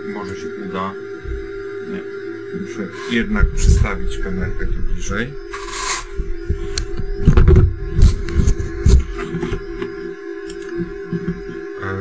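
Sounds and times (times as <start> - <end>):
steady equipment hum: 0.0 - 12.0
bumps and rubbing on microphone: 3.0 - 9.8.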